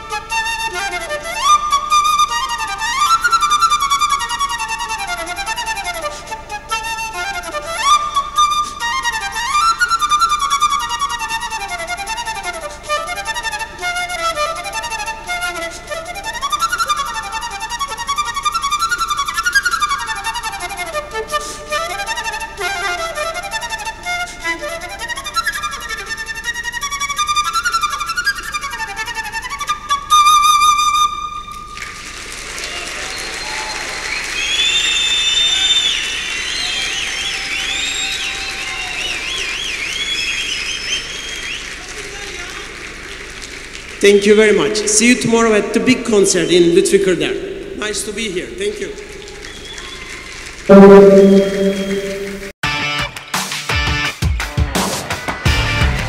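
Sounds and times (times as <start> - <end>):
flute playing fast runs: 0.0 - 42.4, 44.0 - 52.5
audience applause and cheering: 31.6 - 45.6, 47.7 - 51.9.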